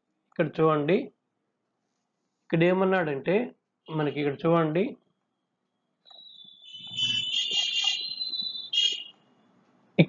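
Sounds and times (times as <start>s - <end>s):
shrill electronic alarm tone: 6.1s - 9.2s.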